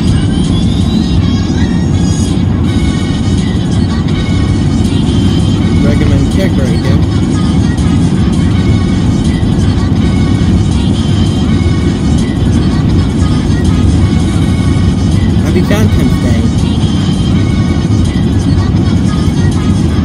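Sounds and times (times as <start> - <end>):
car road rumble: 0.0 - 20.0
music playing: 0.0 - 20.0.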